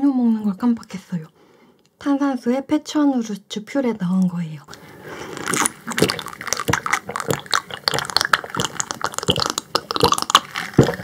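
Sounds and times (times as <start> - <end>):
person swallowing: 5.2 - 11.0.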